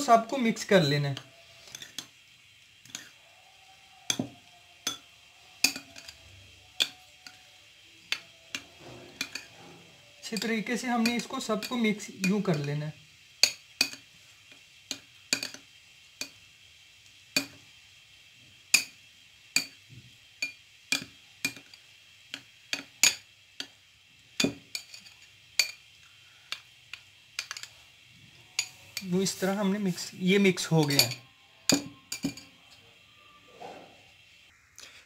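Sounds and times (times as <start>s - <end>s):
metal spoon clinking glass bowls: 0.2s - 2.2s, 2.8s - 3.2s, 4.0s - 12.8s, 13.4s - 14.1s, 14.9s - 16.4s, 17.4s - 17.6s, 20.4s - 23.8s, 24.4s - 25.9s, 26.5s - 27.8s, 28.4s - 32.9s.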